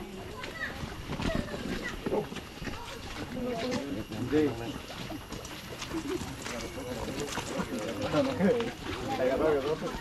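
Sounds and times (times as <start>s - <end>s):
footsteps on wet dirt path: 0.0s - 10.0s.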